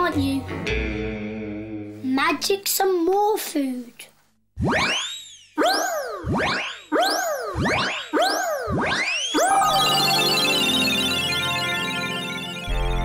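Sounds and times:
swooping magic tones: 4.6s - 12.8s
shimmering twinkling music sting: 9.4s - 13.0s.

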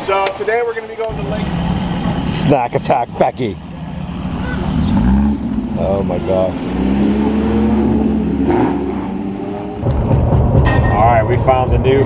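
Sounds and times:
car driving rumble: 0.0s - 12.0s
car engine running: 1.1s - 8.5s.

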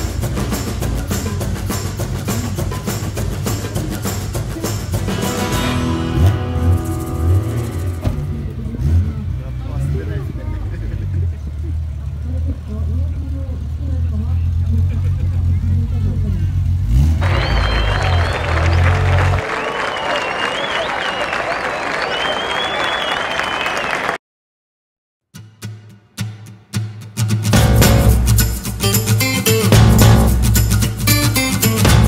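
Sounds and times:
crowd voices: 0.0s - 16.5s, 17.2s - 24.2s
car engine idling: 0.0s - 19.4s.

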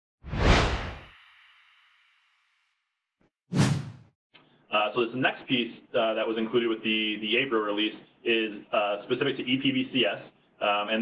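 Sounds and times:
whoosh sound effect: 0.3s - 1.1s, 3.5s - 4.0s.

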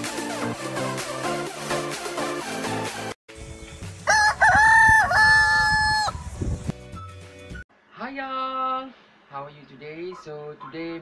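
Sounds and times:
rooster crowing: 4.1s - 6.3s.

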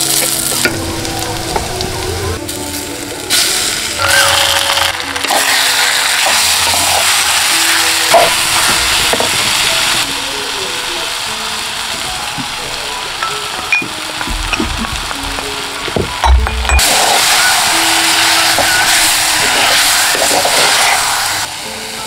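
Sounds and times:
fruit sizzling in hot oil: 0.0s - 22.0s.

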